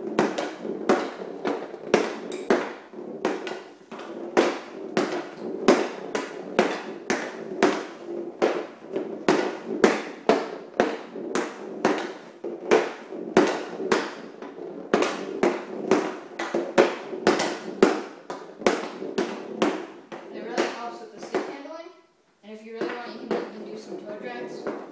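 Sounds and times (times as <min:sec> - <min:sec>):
hockey stick clacking on plastic tiles: 0:00.0 - 0:21.7, 0:22.7 - 0:24.9.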